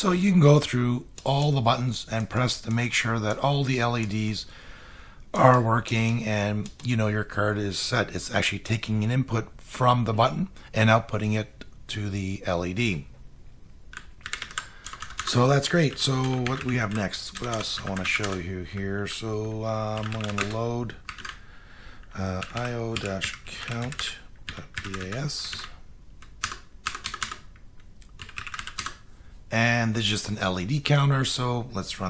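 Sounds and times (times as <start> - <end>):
computer keyboard keys clicking: 13.9 - 18.4, 19.9 - 21.4, 22.4 - 29.0.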